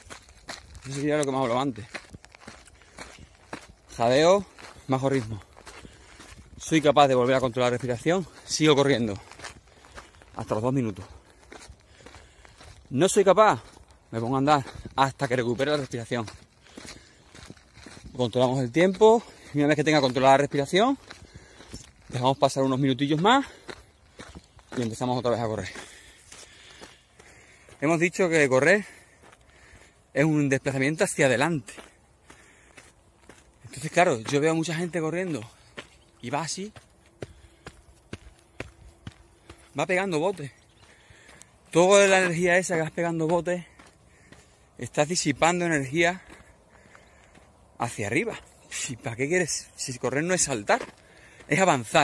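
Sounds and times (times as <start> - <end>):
faint jogging footfalls: 0.0 - 52.0.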